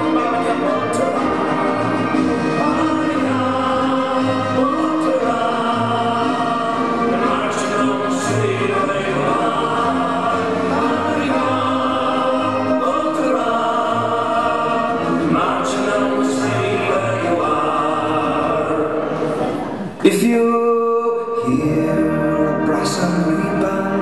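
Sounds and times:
brass and reed band music: 0.0s - 19.6s, 21.5s - 24.0s
group of voices singing: 0.0s - 20.2s.

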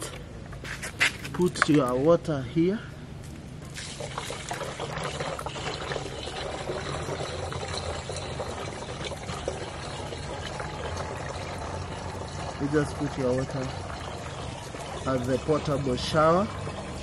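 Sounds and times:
water pouring into plastic tank: 3.7s - 17.0s.

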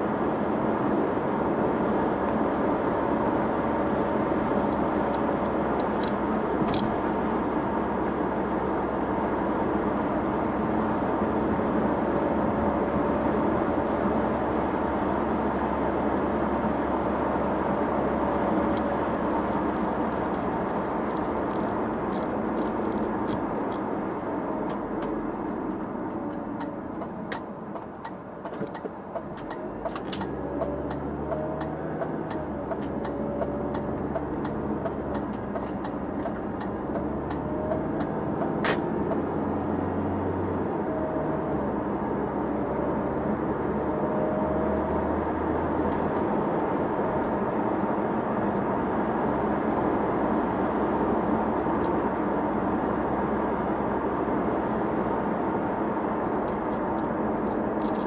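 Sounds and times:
car engine and tyre noise: 0.0s - 58.0s
turn signal ticking: 18.7s - 39.4s.

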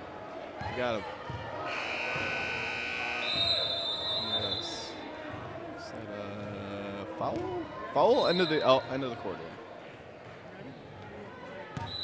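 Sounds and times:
voices in a hall: 0.0s - 12.0s
scoreboard buzzer: 1.7s - 3.8s
referee's whistle blast: 1.7s - 5.0s.

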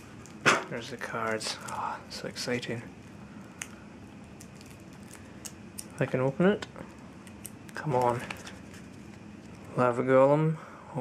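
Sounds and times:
plastic wrap crinkling: 0.0s - 6.2s, 6.8s - 9.8s
low room noise: 0.0s - 11.0s.

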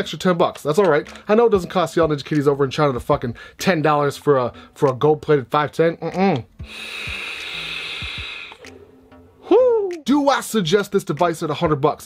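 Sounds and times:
air hissing through vape tank: 6.6s - 8.8s.

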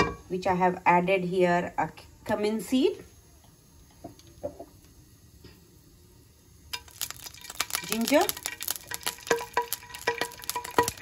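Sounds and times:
seeds crackling in hot oil: 2.2s - 11.0s.

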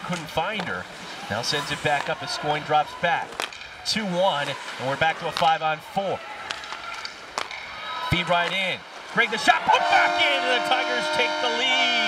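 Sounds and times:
ice skating: 0.0s - 10.0s
arena crowd: 0.0s - 12.0s
stick clacking on puck: 3.3s - 3.7s, 6.4s - 7.7s.

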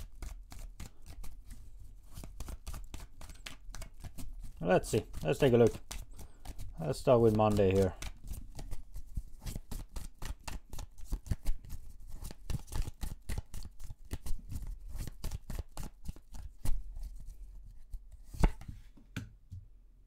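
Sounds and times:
cards being shuffled: 0.0s - 18.8s.

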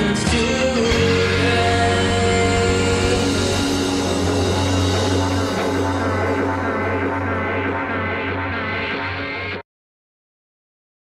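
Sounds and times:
rock music droning chord: 0.0s - 9.6s
steady low bass note: 0.8s - 9.6s.

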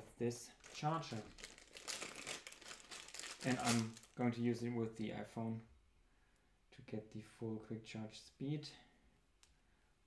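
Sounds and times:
plastic bag crinkling: 0.5s - 4.2s.

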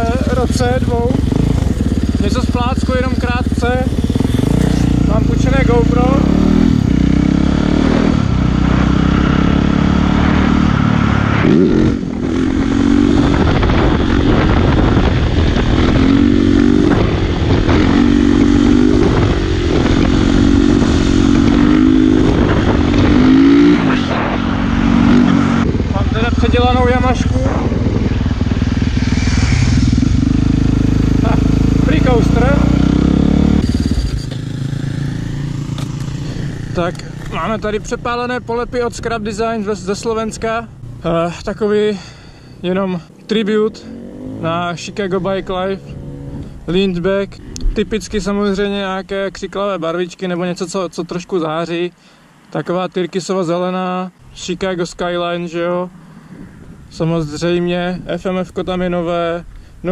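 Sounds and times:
motorcycle engine revving: 0.0s - 41.2s, 43.6s - 47.8s.

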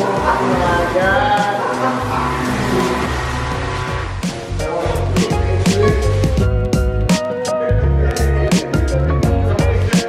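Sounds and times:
background music with bass line: 0.0s - 10.0s.

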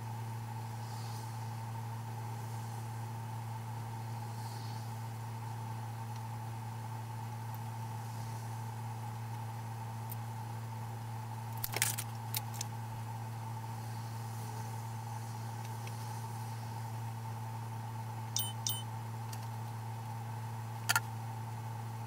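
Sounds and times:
low background hum: 0.0s - 22.0s.

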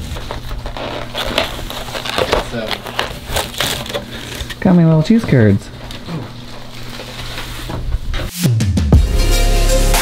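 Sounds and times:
paper bag and foam crinkling: 0.0s - 5.0s, 5.7s - 7.7s.

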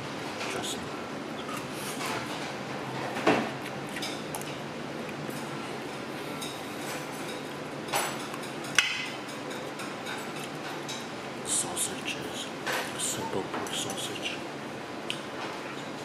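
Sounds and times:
steady room hum: 0.0s - 16.0s
chopsticks clinking on plates: 6.4s - 11.1s.

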